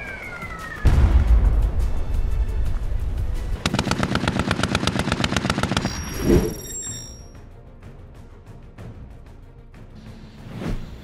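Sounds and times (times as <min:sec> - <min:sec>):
background music: 0:00.0 - 0:11.0
high ringing tone: 0:05.9 - 0:07.4.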